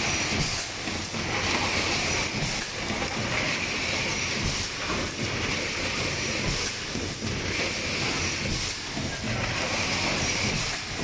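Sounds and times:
machine clatter: 0:00.0 - 0:11.0.

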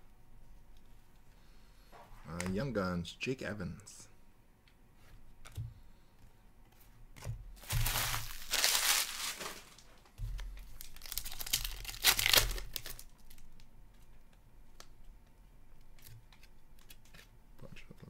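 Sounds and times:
cards being flipped through: 0:07.6 - 0:13.4, 0:16.0 - 0:17.3
foil wrapper crinkling and tearing: 0:07.6 - 0:13.7.

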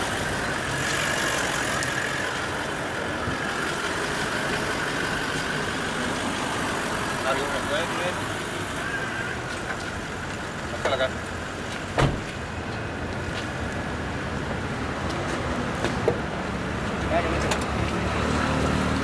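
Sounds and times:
street traffic: 0:00.0 - 0:19.0
vehicle engine rumbling: 0:00.0 - 0:19.0.

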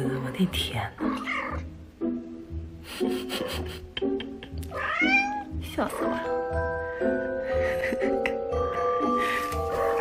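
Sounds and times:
kitten meowing: 0:04.7 - 0:06.2.

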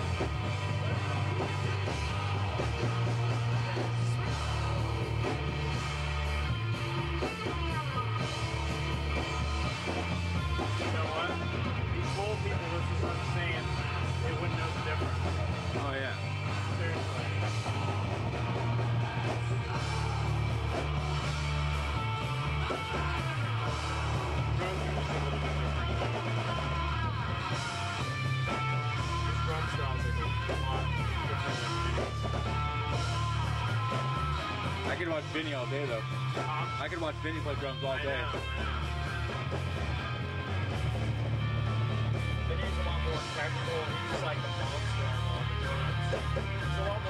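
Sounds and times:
drum kit playing: 0:00.0 - 0:47.0
electric guitar: 0:00.0 - 0:47.0.

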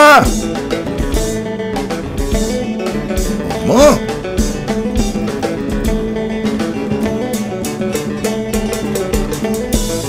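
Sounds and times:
drum kit beat: 0:00.0 - 0:10.0
electric guitar lines: 0:00.0 - 0:10.0.

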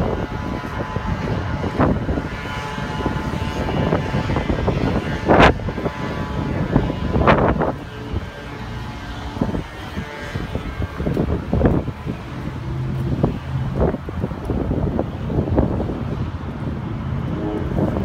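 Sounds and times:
steady low hum: 0:00.0 - 0:18.0
wind buffeting microphone: 0:00.0 - 0:18.0.

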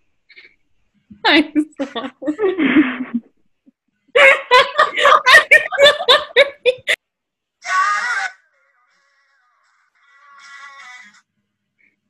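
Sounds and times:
women laughing: 0:01.3 - 0:03.3, 0:04.2 - 0:07.0.

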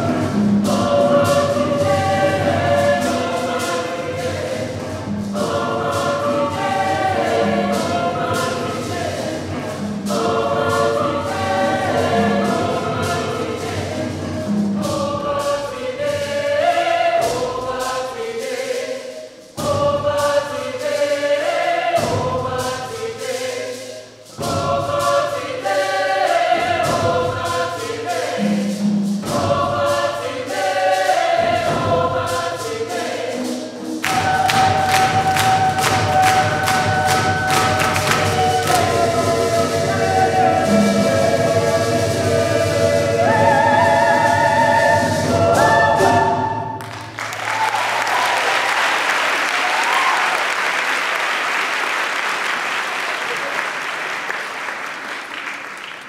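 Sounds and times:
hand drums: 0:00.0 - 0:48.3
choir singing gospel song: 0:00.0 - 0:53.0.

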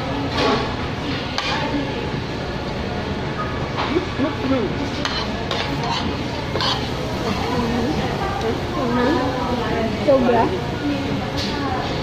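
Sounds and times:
restaurant din: 0:00.0 - 0:12.0
cutlery clinking on plates: 0:05.0 - 0:06.9.

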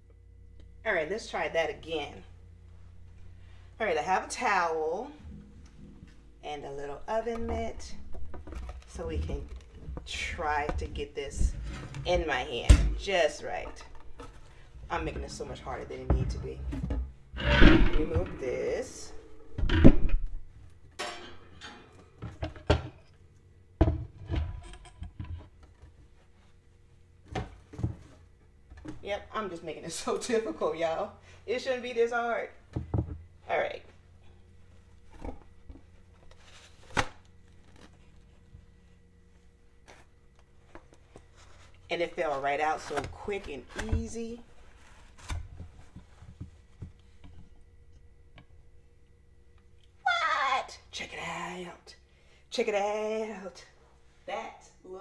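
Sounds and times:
faint steady hum: 0:00.0 - 0:55.0
knocks and light clatters on countertop: 0:32.7 - 0:33.2.

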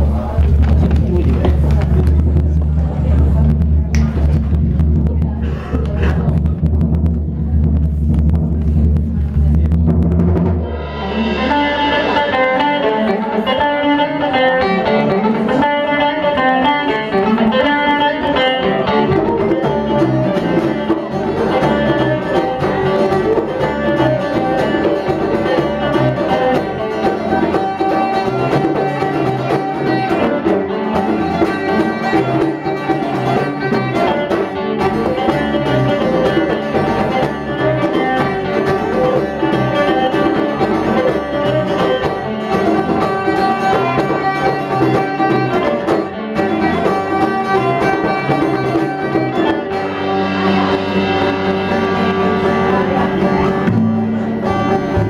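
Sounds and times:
bass guitar: 0:00.0 - 0:55.0
plucked guitar: 0:00.0 - 0:55.0.

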